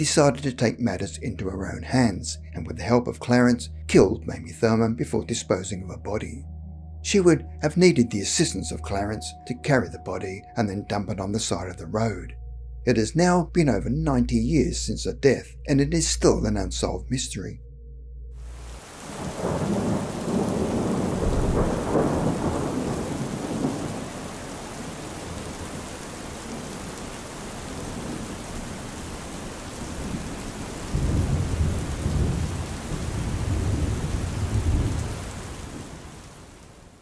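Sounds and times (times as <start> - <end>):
steady rain: 18.4 - 37.0
rolling thunder: 18.8 - 36.6.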